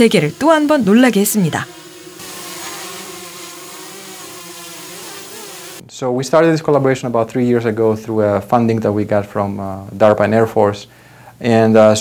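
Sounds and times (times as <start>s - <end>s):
drone propellers whirring: 2.2s - 5.8s.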